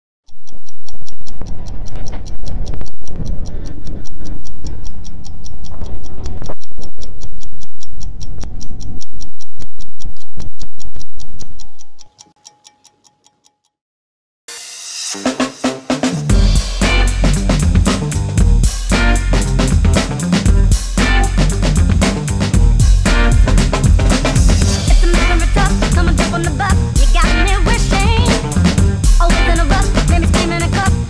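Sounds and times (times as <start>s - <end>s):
fast clock ticking: 0.3s - 13.7s, 16.2s - 31.0s
loud deep music: 16.2s - 31.0s.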